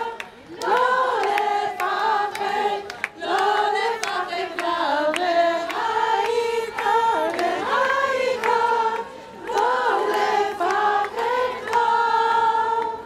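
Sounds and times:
women singing in unison: 0.0 - 13.0.

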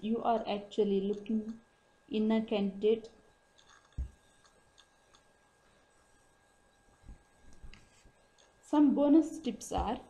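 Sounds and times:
faint irregular ticks: 1.0 - 1.7, 3.0 - 8.7.

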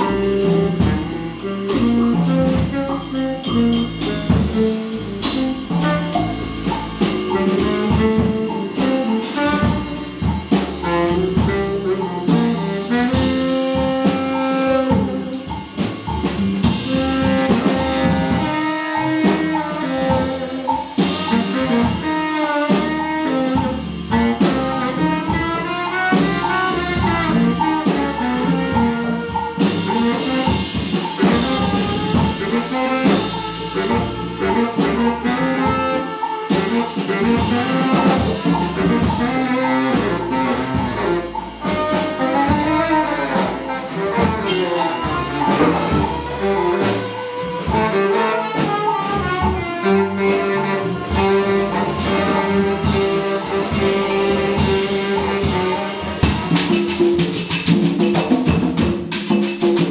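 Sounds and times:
baritone saxophone: 0.0 - 58.1
congas: 0.0 - 59.9
drum kit with cymbals: 0.0 - 59.9.

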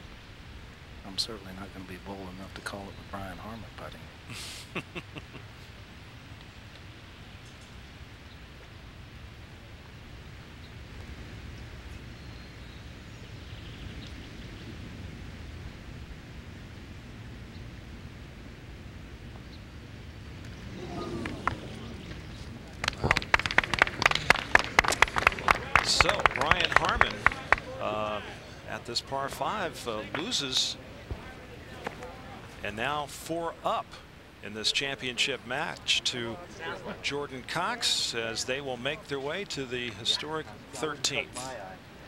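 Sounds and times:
crowd clapping: 20.4 - 28.4
crowd voices: 20.5 - 42.0.

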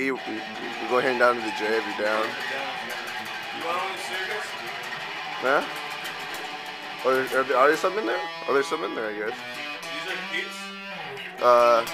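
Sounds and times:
guitar played quietly: 0.0 - 11.9.

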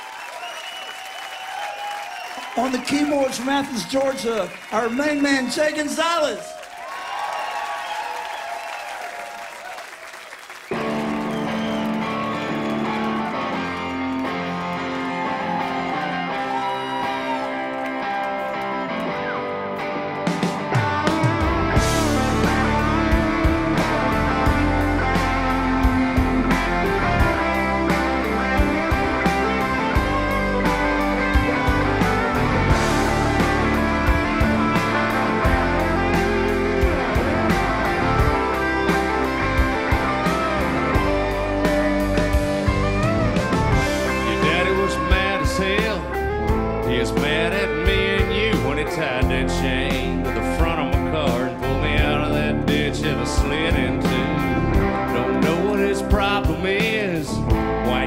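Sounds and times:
crowd noise: 0.0 - 58.0
electric guitars playing rock: 10.7 - 58.0
drums and bass: 20.2 - 58.0.

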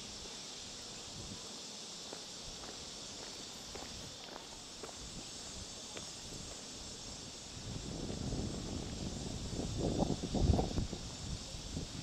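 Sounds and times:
high drone of insects: 0.0 - 12.0
footsteps on concrete: 2.1 - 6.7.

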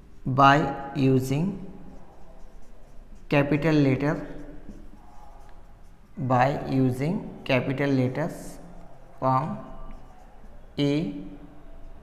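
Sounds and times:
marker pen writing on whiteboard: 0.0 - 12.0
man speaking: 0.3 - 1.8, 3.3 - 4.4, 6.2 - 10.2, 10.8 - 11.4.

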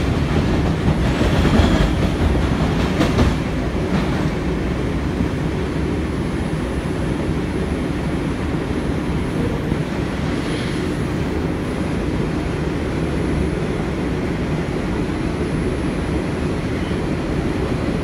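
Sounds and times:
train wheels rumbling on rail: 0.0 - 18.0.

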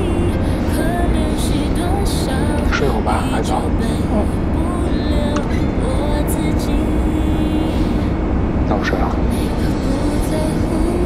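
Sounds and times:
slow pop ballad with vocal: 0.0 - 8.2, 9.0 - 11.0
airliner cabin drone: 0.0 - 11.0.

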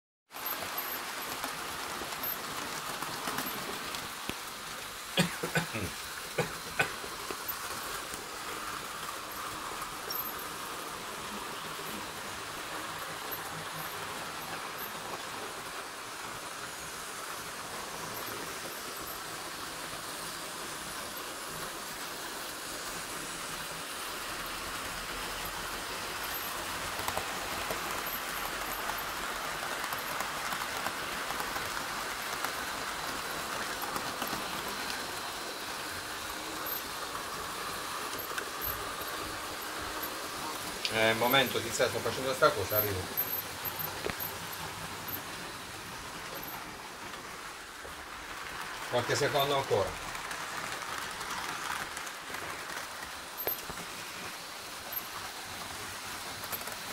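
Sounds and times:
model trains whirring on track: 0.3 - 56.9.

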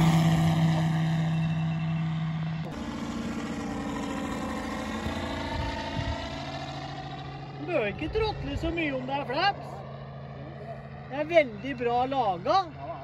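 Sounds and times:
model plane engine droning: 0.0 - 13.0.

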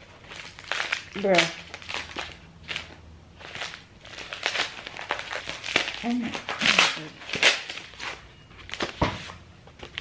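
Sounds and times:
packaging crinkling and rustling: 0.0 - 10.0.

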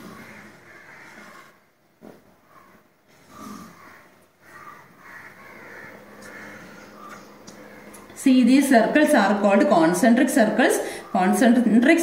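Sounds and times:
bird harsh calls: 0.0 - 1.6, 2.4 - 8.2.

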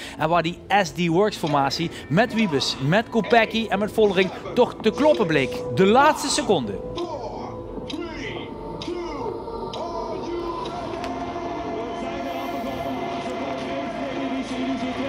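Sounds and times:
steady held music tones: 0.0 - 15.0
crowd noise: 1.3 - 15.0
announcer over public address: 1.9 - 8.9.

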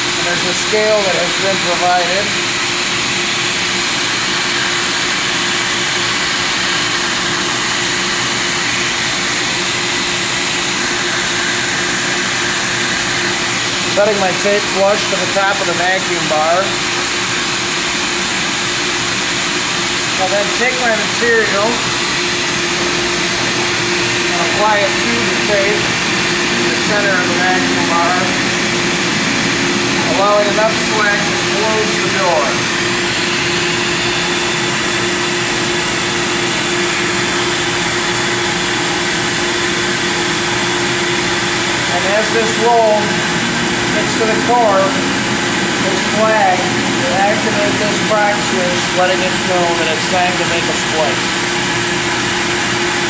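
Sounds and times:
constant hum: 0.0 - 53.0
vacuum rushing noise: 19.8 - 37.3, 39.3 - 53.0.

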